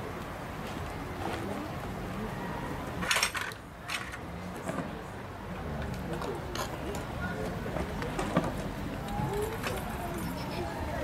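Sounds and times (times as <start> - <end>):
voices talking indistinctly: 0.0 - 11.0.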